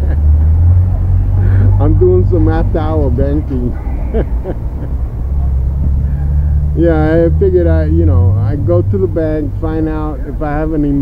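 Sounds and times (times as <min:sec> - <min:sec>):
man laughing: 0:00.0 - 0:00.6, 0:01.4 - 0:01.9, 0:03.5 - 0:05.0
city street traffic rumble: 0:00.0 - 0:11.0.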